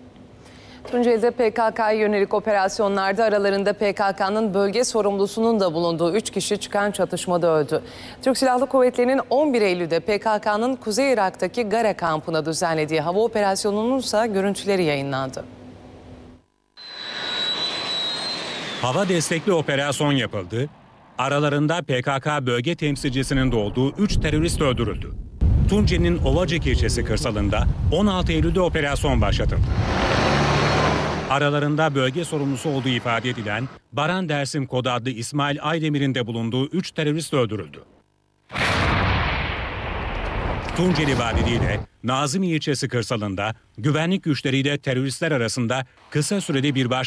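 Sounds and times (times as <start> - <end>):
fighter jets taking off: 16.8 - 21.2, 22.8 - 31.6
continuous noisy rumble: 22.6 - 29.9
explosion blast: 22.9 - 31.4, 38.5 - 41.9.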